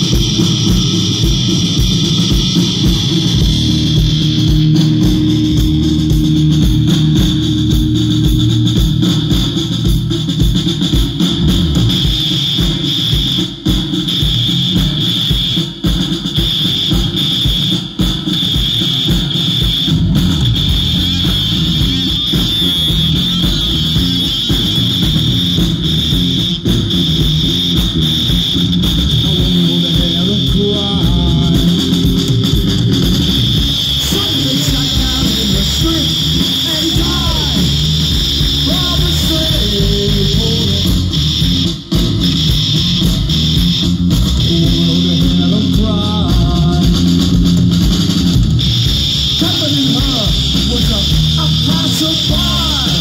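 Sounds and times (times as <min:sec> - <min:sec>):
live punk band playing: 0:00.0 - 0:53.0.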